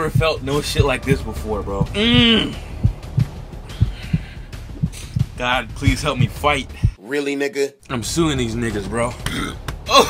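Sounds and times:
heartbeat thumps: 0.0 - 7.0.

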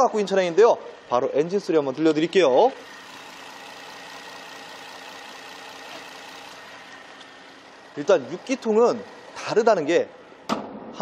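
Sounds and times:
car engine idling: 0.0 - 10.6.

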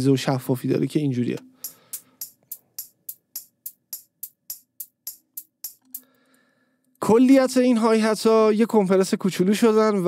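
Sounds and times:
electronic hi-hat hits: 1.4 - 6.1.

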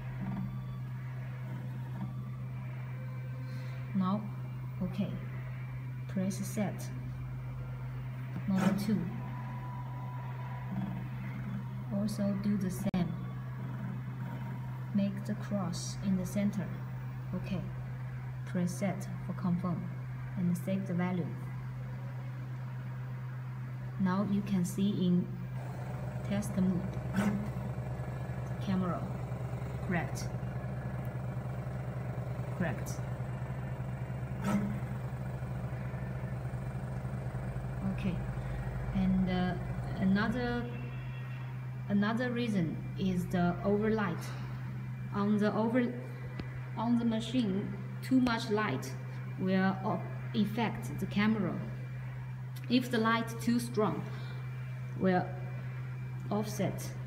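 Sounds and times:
machine whirring down: 0.0 - 48.0
machine humming: 0.0 - 57.0.

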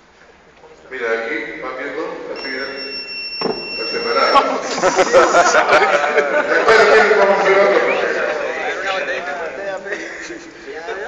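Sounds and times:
high electronic beep: 2.4 - 5.2
people talking: 3.8 - 11.0.

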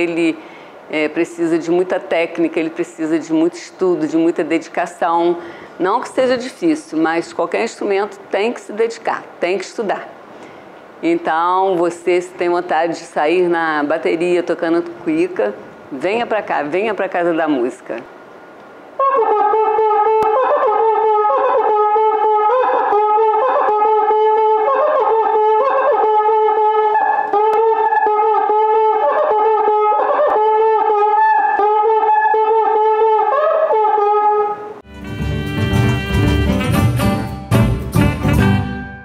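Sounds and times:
burst of music: 34.8 - 39.0
friction drum sliding notes: 34.9 - 38.7.

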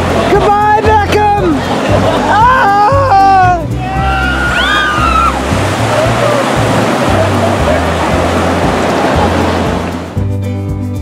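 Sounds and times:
rushing whitewater: 0.0 - 10.2
background music: 0.0 - 11.0.

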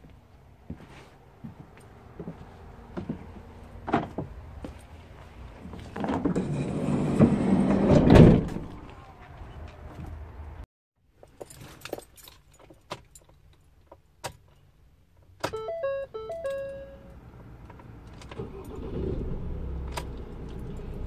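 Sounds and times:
van engine starting and idling: 15.4 - 21.0
stepped dashboard chime tones: 15.5 - 17.2.

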